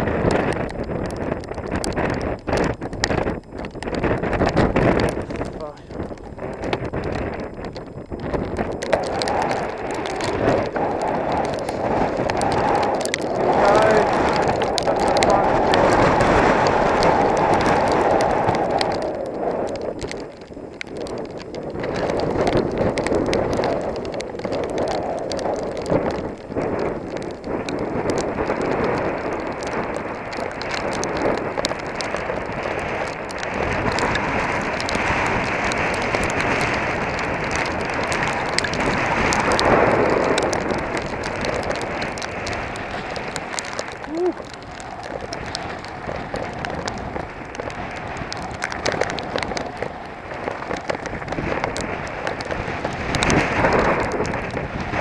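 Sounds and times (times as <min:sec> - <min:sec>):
bike clicks and rattles: 0:00.0 - 0:55.0
wind buffeting microphone: 0:00.0 - 0:55.0.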